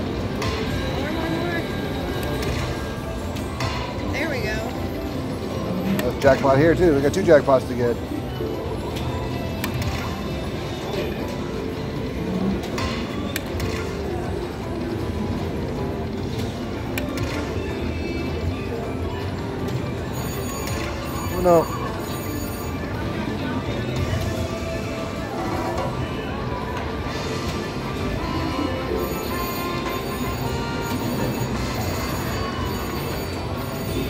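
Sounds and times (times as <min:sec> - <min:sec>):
slot machine music and reel sounds: 0:00.0 - 0:34.0
casino background chatter: 0:00.5 - 0:34.0.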